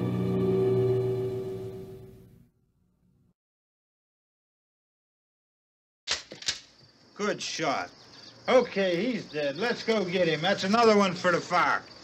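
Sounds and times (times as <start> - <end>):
dark horror music with gong tones: 0.0 - 2.1.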